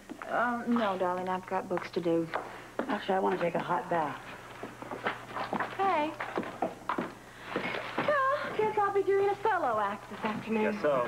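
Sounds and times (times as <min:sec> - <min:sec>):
footsteps on hard floor: 0:00.0 - 0:08.8
woman's voice: 0:00.2 - 0:04.2, 0:05.7 - 0:06.2, 0:08.0 - 0:10.9.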